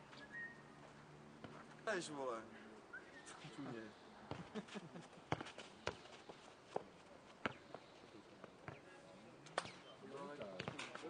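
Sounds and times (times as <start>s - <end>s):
players' voices: 1.8s - 11.0s
ball thudding on clay court: 6.8s - 7.7s, 10.4s - 11.0s.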